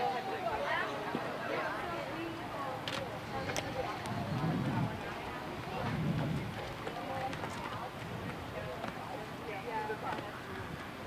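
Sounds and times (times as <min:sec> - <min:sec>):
distant voices talking: 0:00.0 - 0:11.0
outdoor background noise: 0:00.0 - 0:11.0.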